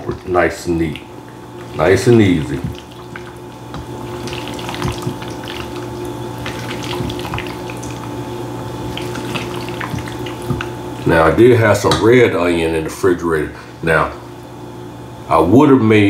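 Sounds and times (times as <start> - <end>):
steady hum: 0.0 - 16.0
spatula squishing potato salad: 1.6 - 8.2, 8.8 - 10.8.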